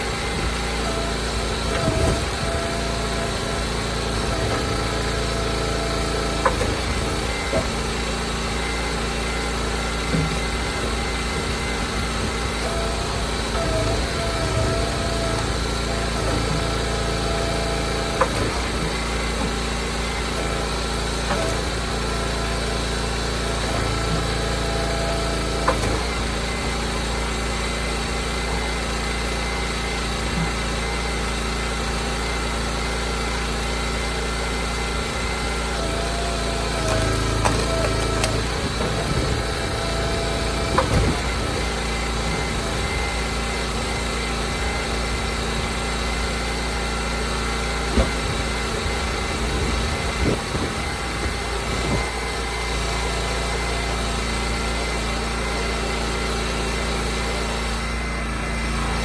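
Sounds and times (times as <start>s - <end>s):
log splitter engine running: 0.0s - 59.0s
wood cracking and splitting: 35.7s - 43.6s.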